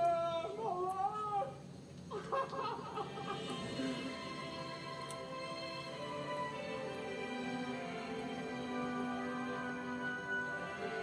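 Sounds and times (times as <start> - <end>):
background music: 2.9 - 11.0.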